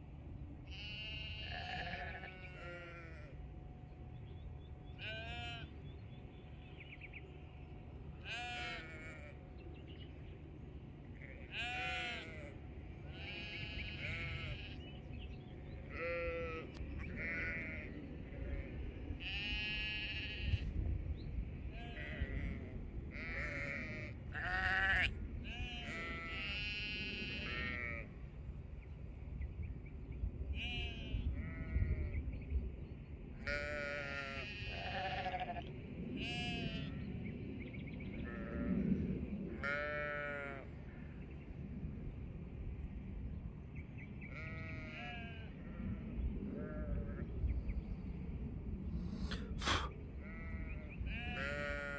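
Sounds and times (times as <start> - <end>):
sheep bleating: 0.7 - 3.3, 5.0 - 5.7, 8.2 - 9.4, 11.2 - 14.8, 15.9 - 20.7, 21.8 - 28.1, 30.6 - 32.0, 33.4 - 37.0, 39.6 - 40.7, 44.3 - 45.8, 50.2 - 51.9.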